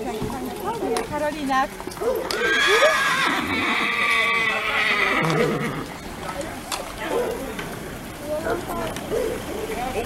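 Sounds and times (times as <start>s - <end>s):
horse whinnying: 2.2s - 6.0s.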